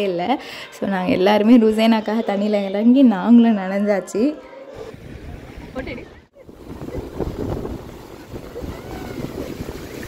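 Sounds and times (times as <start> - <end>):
surf breaking: 4.9 - 10.0
wind buffeting microphone: 4.9 - 10.0.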